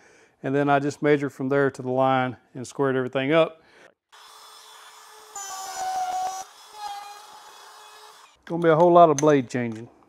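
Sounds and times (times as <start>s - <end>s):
router cutting wood: 4.2s - 8.4s.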